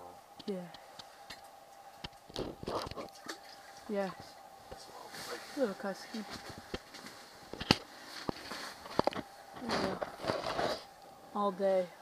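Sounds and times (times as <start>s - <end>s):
handling rustle: 5.0s - 10.9s.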